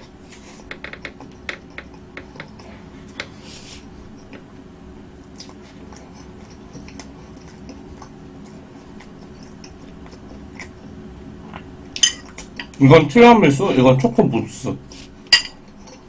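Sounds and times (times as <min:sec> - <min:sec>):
fork clinking on plate: 0:15.3 - 0:16.0.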